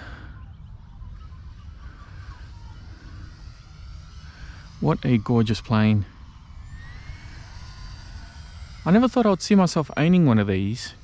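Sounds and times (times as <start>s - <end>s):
low steady rumble: 0.0s - 11.0s
model plane motor whine: 0.0s - 11.0s
man talking: 4.8s - 6.1s, 8.8s - 11.0s.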